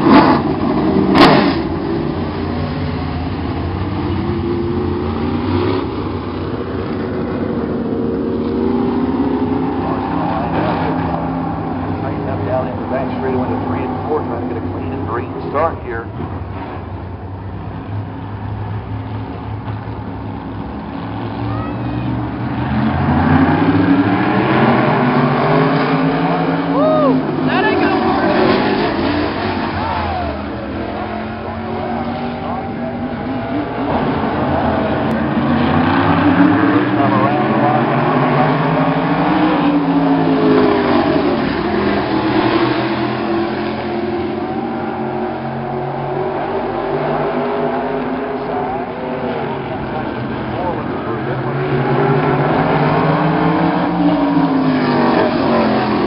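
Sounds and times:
race cars passing by: 0.0 - 56.0.

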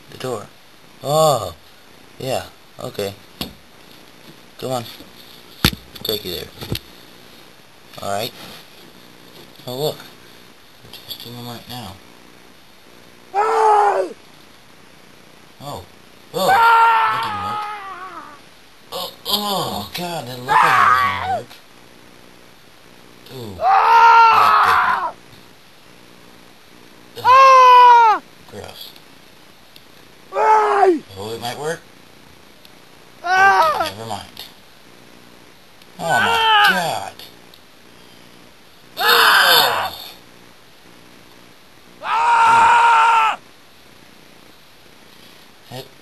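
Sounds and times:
steady background hiss: 0.0 - 46.0
person screaming: 13.4 - 14.2, 16.4 - 18.4, 20.5 - 21.5, 23.5 - 25.2, 27.2 - 28.2, 30.3 - 31.0, 33.2 - 34.0, 36.0 - 36.9, 39.0 - 40.0, 42.0 - 43.4.

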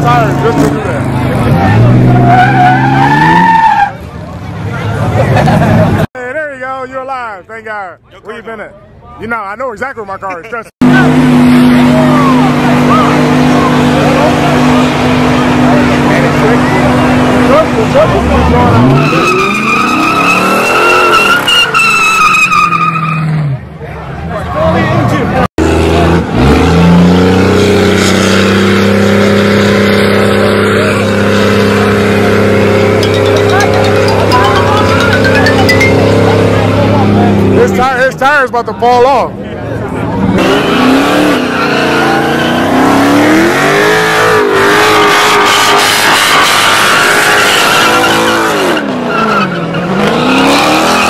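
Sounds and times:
tires squealing on pavement: 0.0 - 5.5, 11.0 - 23.6, 40.2 - 51.0
car engines revving high: 0.0 - 6.1, 10.8 - 23.7, 24.8 - 37.9, 39.4 - 51.0.

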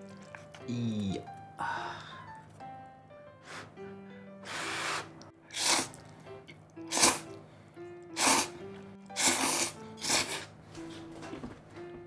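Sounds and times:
faint background music: 0.0 - 12.0
person slurping noodles: 4.5 - 6.1, 6.9 - 7.3, 8.2 - 10.5.

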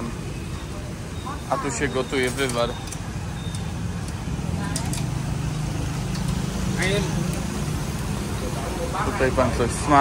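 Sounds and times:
vehicle engine low hum: 0.0 - 9.8.

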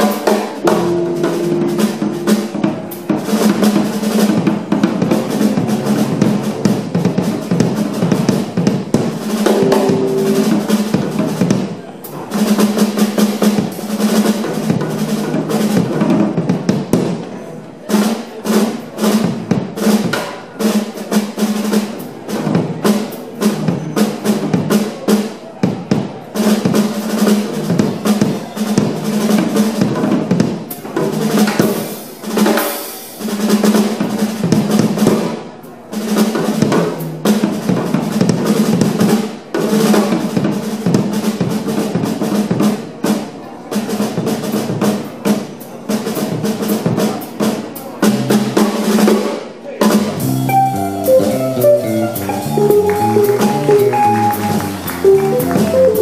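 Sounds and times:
jazz trio playing swing: 0.0 - 17.0, 44.0 - 49.2, 49.8 - 56.0
snare and bass drum fills: 0.0 - 17.3, 17.9 - 56.0
walking bass line: 50.2 - 56.0.

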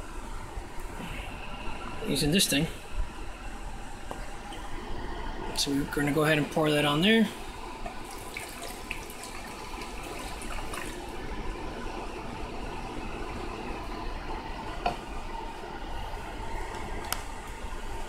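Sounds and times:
liquid pouring into plastic tub: 7.9 - 11.1.

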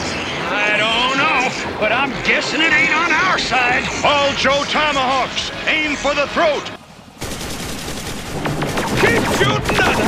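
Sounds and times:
rapid machine-gun fire: 7.2 - 10.0.

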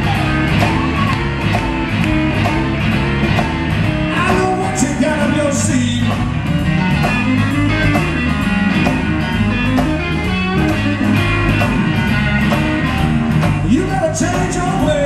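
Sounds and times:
bass: 0.0 - 15.0
electric guitar: 0.0 - 15.0
steady drum beat: 0.0 - 15.0.

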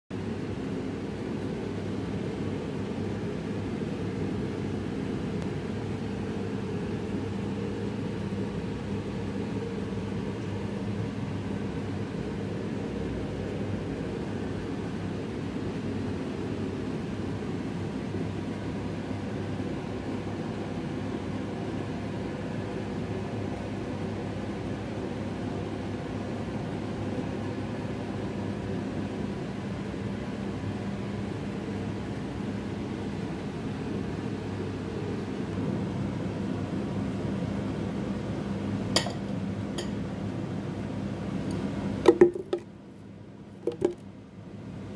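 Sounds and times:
steady mechanical hum: 0.1 - 44.9.

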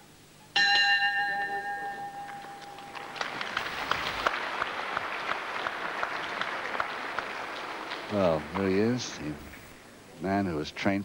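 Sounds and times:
boxing ring bell: 0.6 - 2.9
crowd clapping: 2.2 - 9.7.

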